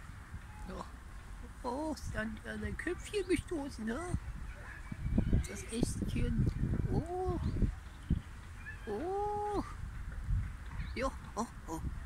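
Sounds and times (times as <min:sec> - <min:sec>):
nutria drawn-out call: 0:08.6 - 0:09.8.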